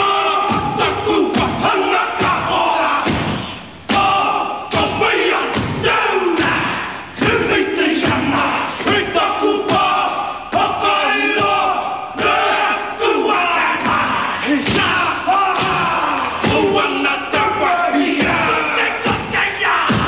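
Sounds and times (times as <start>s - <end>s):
men chanting in unison: 0.0s - 20.0s
feet stamping: 0.4s - 12.8s, 13.6s - 20.0s
sharp slaps: 0.5s - 9.1s, 13.8s - 17.5s.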